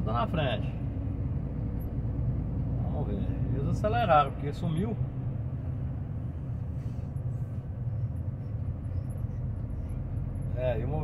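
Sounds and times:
truck engine and road rumble: 0.0 - 11.0.

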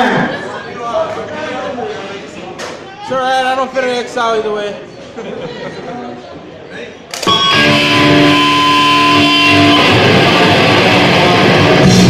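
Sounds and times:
electric guitar chord ringing: 7.2 - 12.0.

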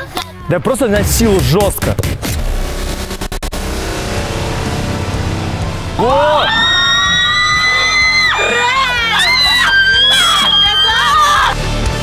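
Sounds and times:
background music: 0.0 - 12.0
young women shrieking and yelling: 6.2 - 11.6.

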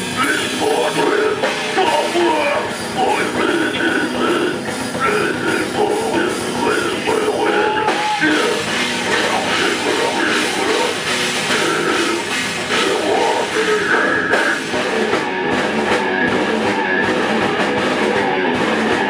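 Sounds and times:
death metal band playing live: 0.0 - 19.0
drum kit: 0.0 - 19.0
heavily distorted guitars: 0.0 - 19.0.

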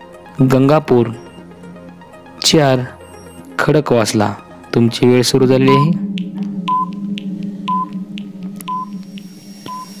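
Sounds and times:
timer ticking: 1.0 - 3.7, 4.4 - 10.0
short electronic beeps: 3.0 - 3.4
steady low hum: 4.2 - 10.0.

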